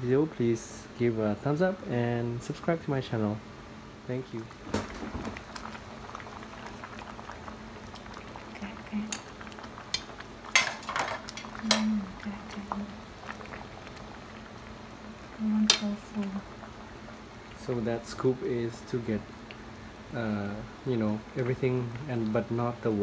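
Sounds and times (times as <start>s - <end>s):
soup boiling and bubbling: 0.0s - 23.0s
utensils clinking on steel pot: 9.9s - 12.0s.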